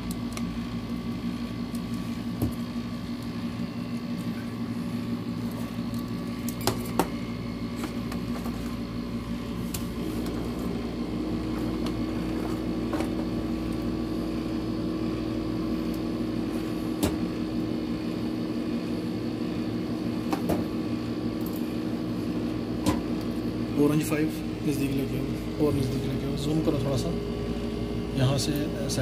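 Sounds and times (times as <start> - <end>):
low machine hum: 0.0 - 29.0.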